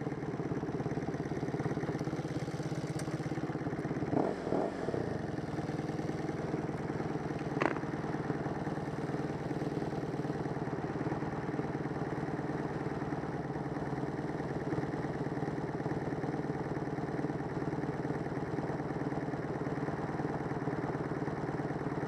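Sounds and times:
motorcycle engine idling: 0.0 - 22.0.

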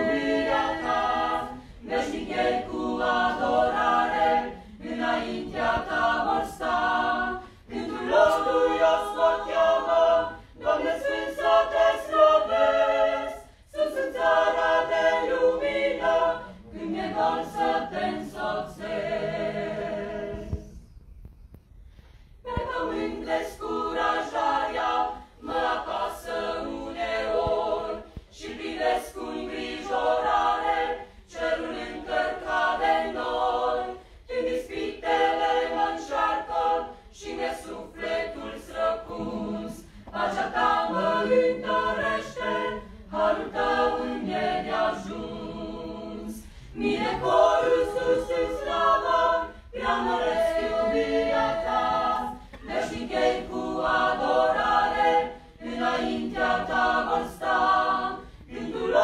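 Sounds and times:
mixed choir singing a cappella: 0.0 - 20.9, 22.4 - 59.0
singers breathing: 21.7 - 22.4, 46.4 - 46.8.

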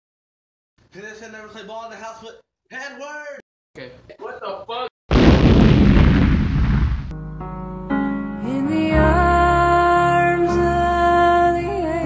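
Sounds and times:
explosion with deep rumble: 5.1 - 7.1.

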